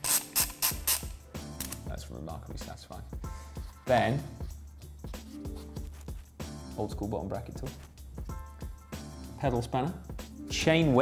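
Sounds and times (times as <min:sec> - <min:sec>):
ratchet driver clicking: 0:00.0 - 0:01.8.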